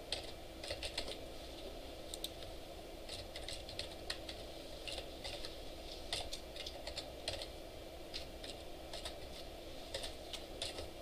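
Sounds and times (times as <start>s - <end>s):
low room hum: 0.0s - 11.0s
computer keyboard typing: 0.1s - 1.2s, 2.1s - 9.3s, 9.9s - 11.0s.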